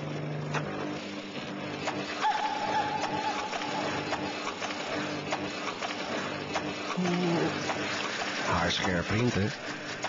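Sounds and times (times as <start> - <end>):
photocopier hissing: 1.9 - 10.0.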